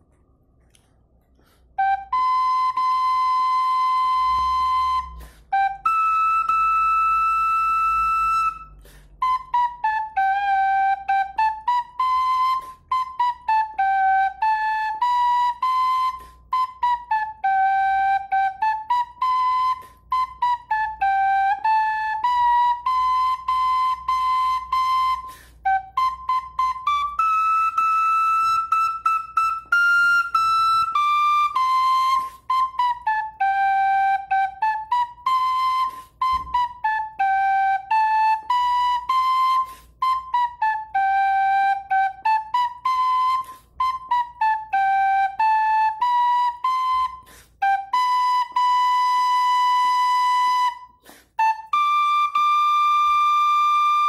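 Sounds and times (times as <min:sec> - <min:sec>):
small flute melody: 0:00.0 - 0:54.0
flute player breaths: 0:00.8 - 0:01.8, 0:05.1 - 0:05.6, 0:08.6 - 0:09.2, 0:16.1 - 0:16.5, 0:25.2 - 0:25.7, 0:39.6 - 0:40.0, 0:47.2 - 0:47.6, 0:50.9 - 0:51.4.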